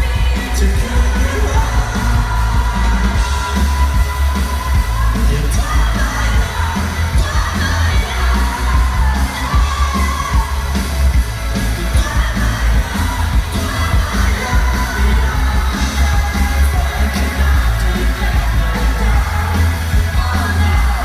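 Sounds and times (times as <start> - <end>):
man and woman singing together: 0.0 - 10.8, 11.6 - 21.0
crowd shouting along: 0.0 - 21.0
pop-rock band playing loudly: 0.0 - 21.0.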